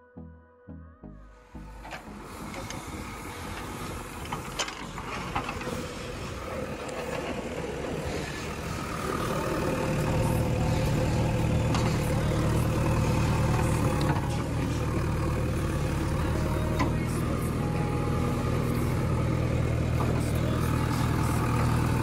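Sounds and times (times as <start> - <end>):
diesel engine running: 1.2 - 22.0.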